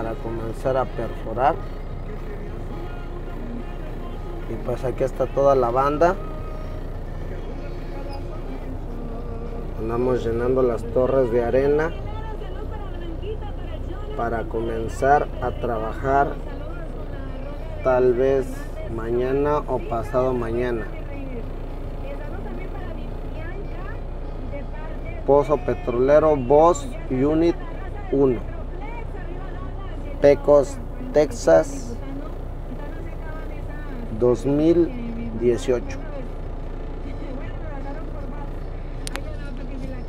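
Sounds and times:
truck diesel engine drone: 0:00.0 - 0:40.0.

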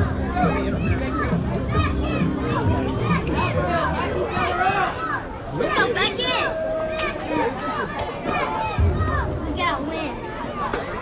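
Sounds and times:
children and adults chattering: 0:00.0 - 0:11.0.

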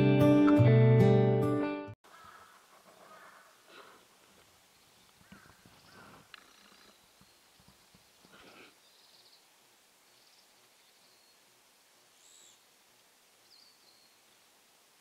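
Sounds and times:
faint bird calls: 0:02.0 - 0:04.1, 0:04.7 - 0:09.5, 0:12.1 - 0:12.7.

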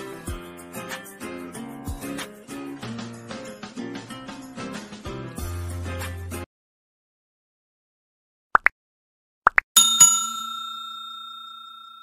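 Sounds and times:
bell-like ding chime: 0:09.8 - 0:12.0.

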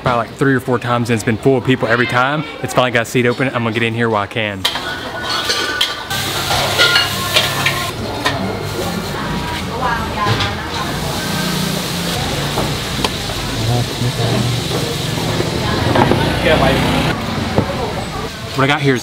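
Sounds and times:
dishes and utensils clinking: 0:04.6 - 0:09.1
faint voices: 0:06.8 - 0:18.6.

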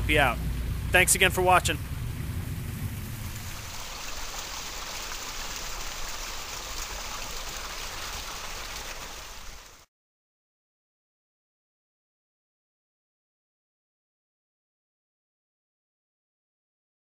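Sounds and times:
waterfall splashing into pond: 0:00.0 - 0:09.9.

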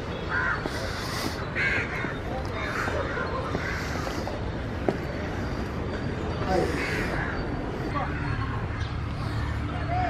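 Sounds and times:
crow cawing: 0:00.2 - 0:04.4, 0:06.5 - 0:07.4.

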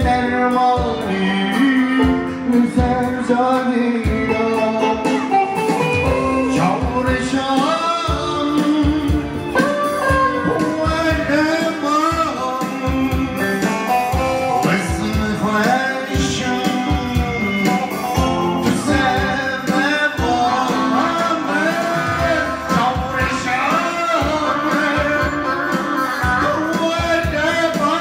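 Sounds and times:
instrumental backing: 0:00.0 - 0:28.0
man singing into microphone: 0:00.0 - 0:28.0.

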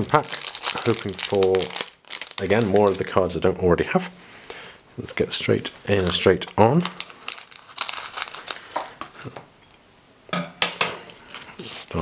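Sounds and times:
foil pack crinkling: 0:00.0 - 0:03.3, 0:05.3 - 0:09.2, 0:11.2 - 0:12.0.

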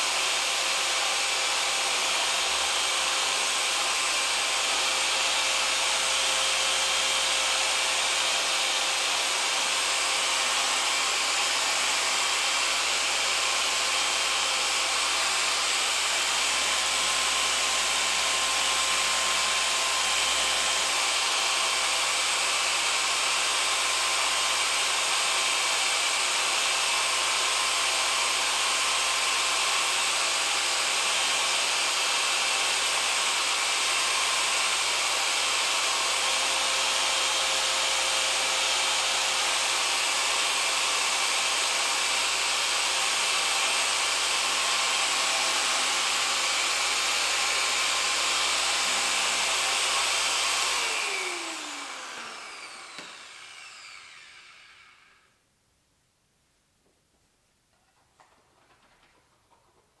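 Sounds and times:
polishing machine whirring: 0:00.0 - 0:55.3.

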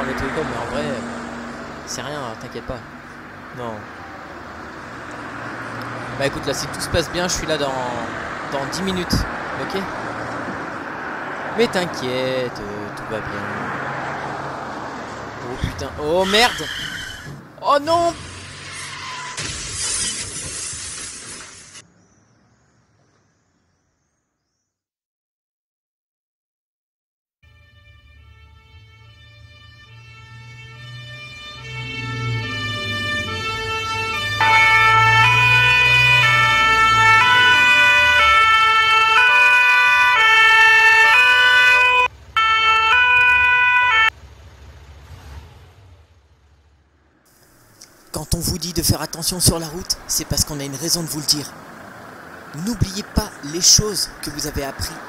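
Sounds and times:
glass breaking: 0:19.2 - 0:21.8
crunching car impact: 0:19.3 - 0:21.8
two-tone emergency siren: 0:27.4 - 0:44.2.

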